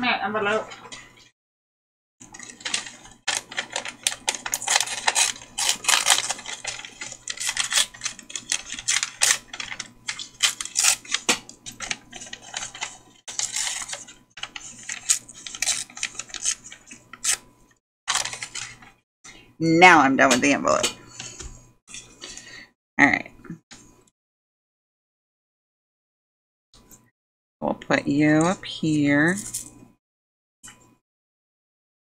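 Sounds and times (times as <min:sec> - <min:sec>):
paper rustling and crinkling: 0:02.2 - 0:17.4, 0:18.1 - 0:19.0.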